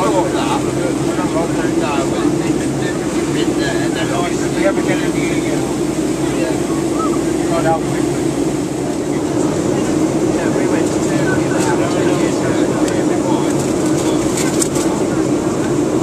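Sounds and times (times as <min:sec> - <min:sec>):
airliner cabin roar: 0:00.0 - 0:16.0
indistinct passenger voices: 0:00.0 - 0:16.0.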